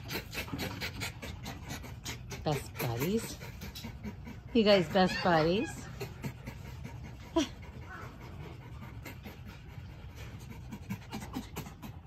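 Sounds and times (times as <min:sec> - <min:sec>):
foxes panting: 0:00.0 - 0:12.0.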